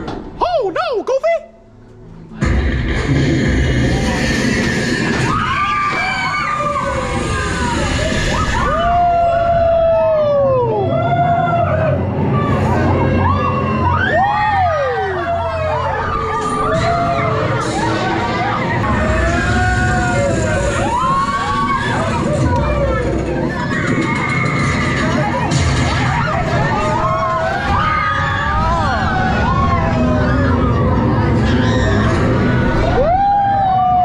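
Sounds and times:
low ride noise: 0.0 - 34.0
riders screaming: 13.0 - 23.0, 26.5 - 34.0.

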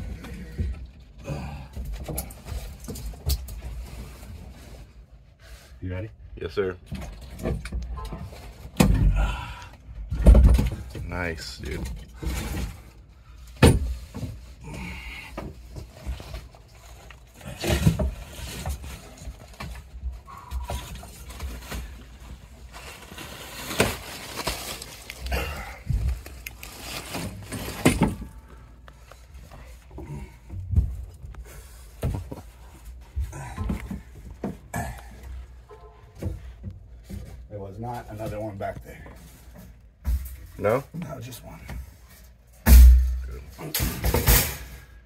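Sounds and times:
rustling against foil ductwork: 0.0 - 6.0, 10.2 - 45.0.

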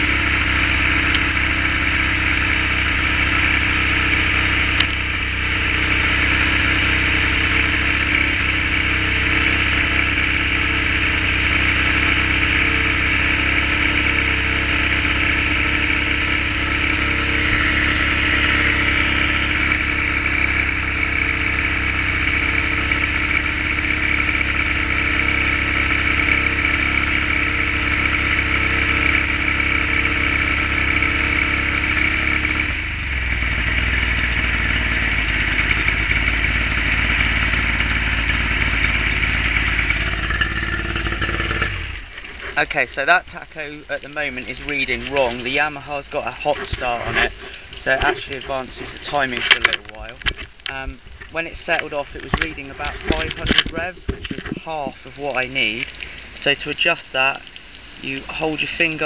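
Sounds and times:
outboard motor idling: 0.0 - 59.0.

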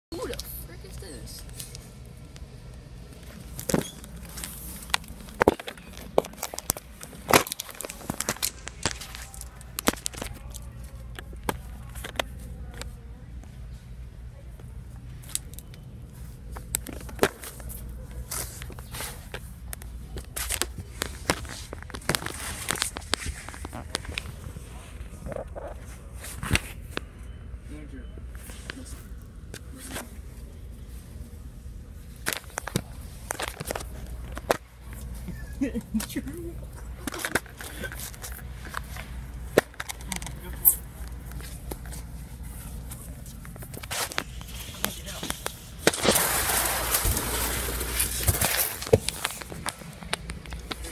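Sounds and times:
steady low hum: 0.1 - 50.9.

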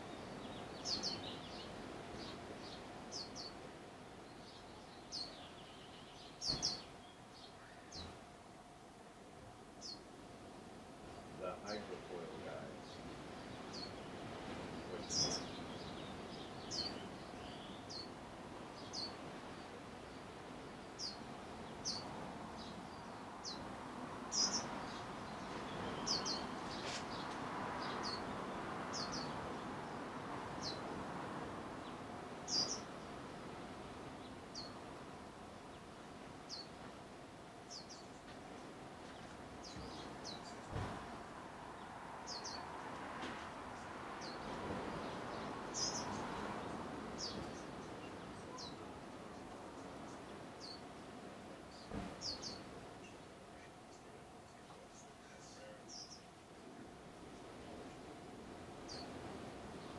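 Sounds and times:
steady background noise: 0.0 - 59.9.

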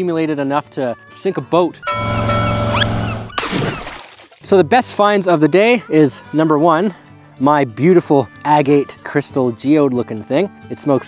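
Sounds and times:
low droning tone: 1.8 - 3.4
rising whistle: 1.8 - 3.4
splashing noise: 3.3 - 4.5.

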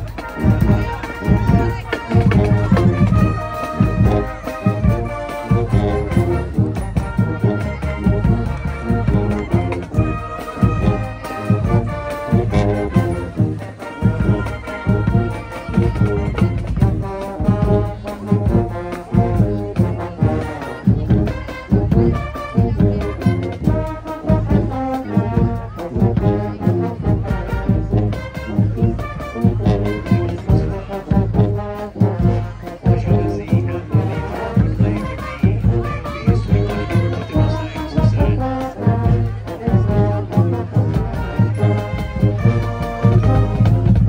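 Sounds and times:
marching band playing brass tune: 0.0 - 44.0
steady drum beat: 0.0 - 44.0
sousaphones low bass line: 25.9 - 44.0.

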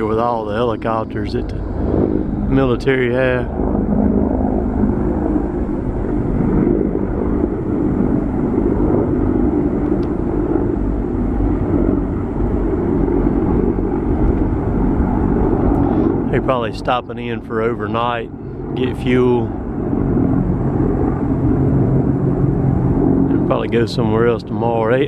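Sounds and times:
helicopters flying overhead: 0.0 - 25.0.

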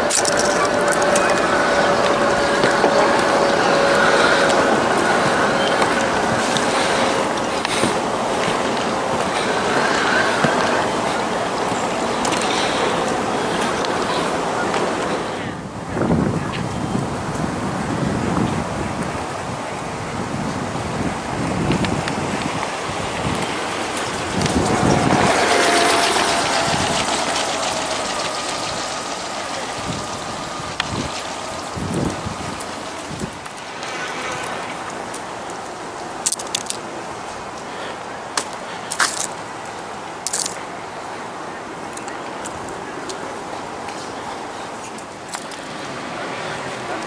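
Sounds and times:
outdoor background noise: 0.0 - 47.0
wind buffeting microphone: 0.0 - 47.0.

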